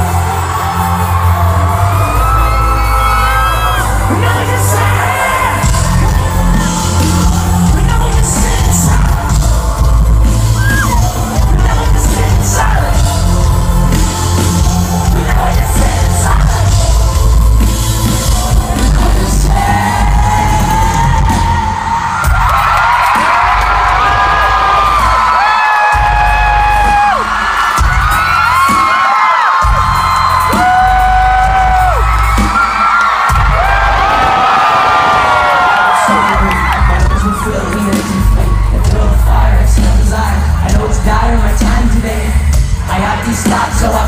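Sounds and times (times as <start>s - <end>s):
live amplified music with bass: 0.0s - 29.0s, 29.6s - 44.0s
crowd whooping and cheering: 0.0s - 44.0s.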